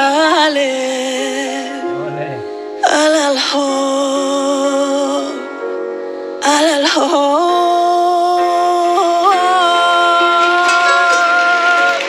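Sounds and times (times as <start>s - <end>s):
woman singing slow ballad: 0.0s - 12.0s.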